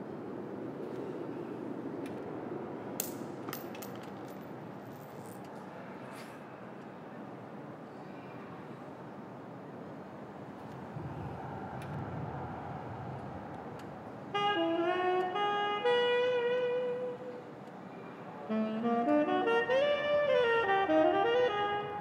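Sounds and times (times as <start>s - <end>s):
low background noise: 0.0s - 22.0s
saxophone slow melody: 14.3s - 17.6s, 18.4s - 22.0s.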